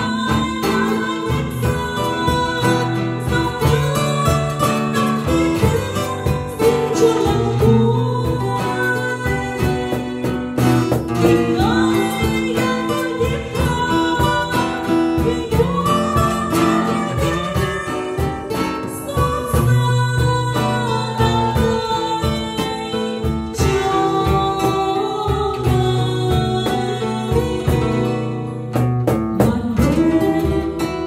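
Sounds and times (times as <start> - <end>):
acoustic guitar: 0.0 - 31.0
woman singing into microphone: 0.0 - 31.0.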